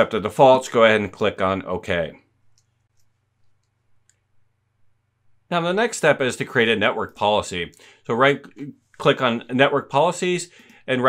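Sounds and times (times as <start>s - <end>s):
man speaking: 0.0s - 2.3s, 5.5s - 11.0s
faint low hum: 0.0s - 10.0s
computer mouse clicks: 2.5s - 4.3s.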